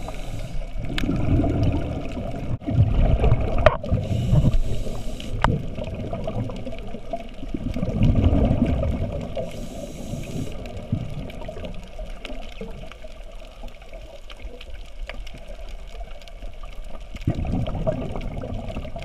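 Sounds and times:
muffled underwater water rush: 0:00.0 - 0:19.0
faint crackling ticks: 0:03.6 - 0:19.0.

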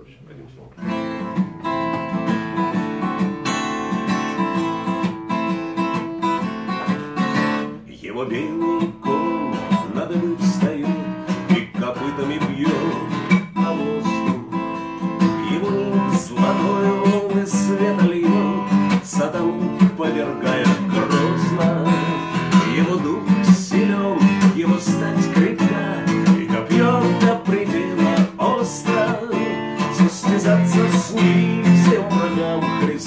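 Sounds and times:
acoustic guitar strummed chords: 0:00.8 - 0:33.0
man singing: 0:07.8 - 0:33.0.

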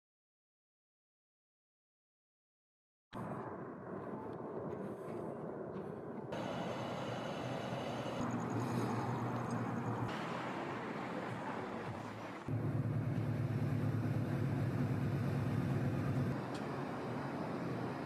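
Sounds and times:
wind: 0:03.1 - 0:18.0
low vehicle rumble: 0:03.2 - 0:18.0
traffic noise: 0:03.2 - 0:18.0.

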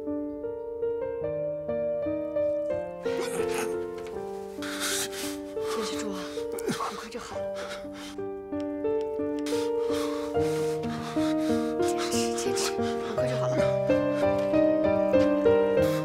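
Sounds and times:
man breathing and groaning: 0:03.1 - 0:03.8, 0:04.6 - 0:08.2, 0:09.4 - 0:16.0.

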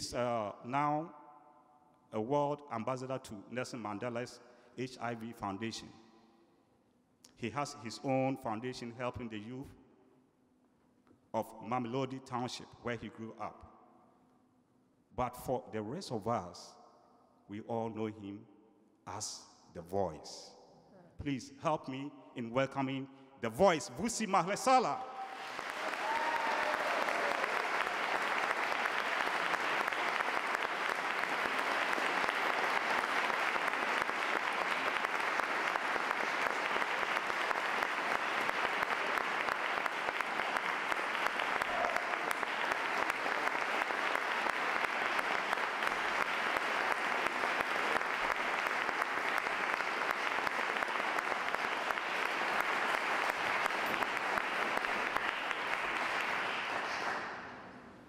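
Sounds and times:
audience applauding: 0:25.2 - 0:57.4.

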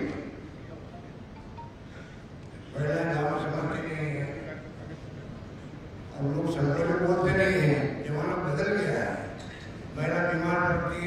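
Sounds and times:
room and loudspeaker hiss: 0:00.0 - 0:11.0
man speaking over loudspeakers: 0:02.7 - 0:04.8, 0:06.1 - 0:11.0.

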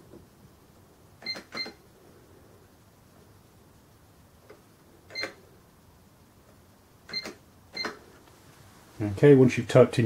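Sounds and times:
cash register key beeps: 0:01.2 - 0:01.8, 0:05.1 - 0:05.4, 0:07.1 - 0:08.0.

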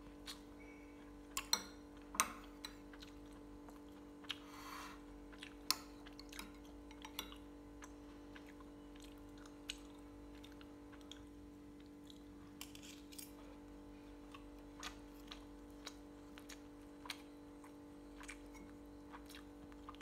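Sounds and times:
steady low hum: 0:00.0 - 0:20.0
faint chewing: 0:00.2 - 0:20.0.

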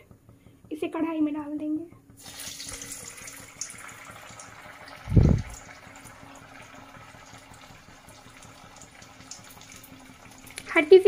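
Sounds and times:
food deep-frying in oil: 0:02.2 - 0:11.0
dull low thump: 0:05.1 - 0:05.5.

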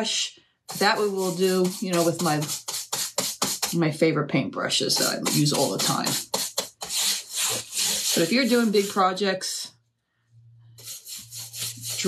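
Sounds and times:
brush scrubbing metal washboard: 0:00.7 - 0:03.8, 0:04.9 - 0:09.1, 0:10.8 - 0:12.0.

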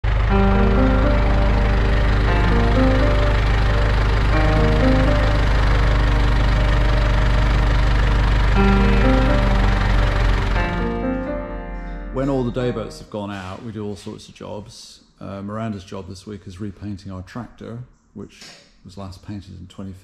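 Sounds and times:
tractor engine running: 0:00.0 - 0:12.9
background music: 0:00.1 - 0:13.5.

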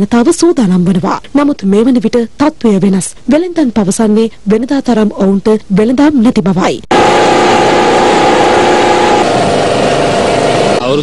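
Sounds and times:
small engine running: 0:06.9 - 0:11.0.

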